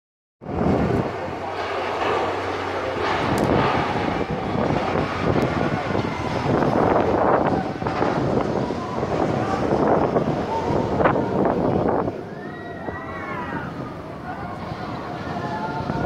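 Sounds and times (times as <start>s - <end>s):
roller coaster rumbling on track: 0.4s - 16.0s
wind on microphone: 0.4s - 16.0s.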